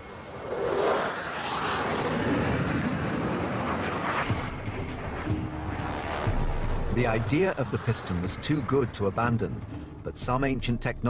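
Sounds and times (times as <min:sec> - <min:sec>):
fighter jet engine roar: 0:00.0 - 0:10.2.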